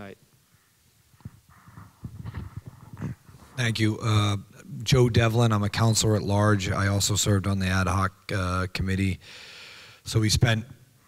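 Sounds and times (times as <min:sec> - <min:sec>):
microphone handling knocks: 0:01.2 - 0:03.6.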